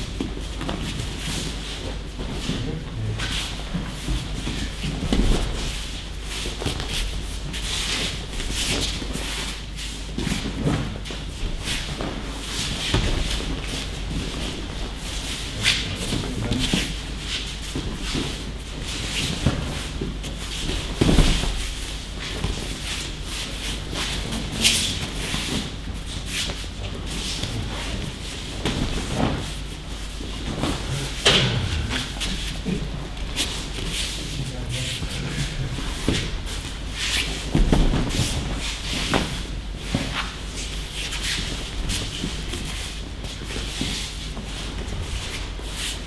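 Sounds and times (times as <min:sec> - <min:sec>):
bare feet shuffling on mats: 0:00.0 - 0:46.0
uniforms rustling: 0:00.0 - 0:46.0
bodies thudding onto mat: 0:20.6 - 0:21.6, 0:37.4 - 0:39.4.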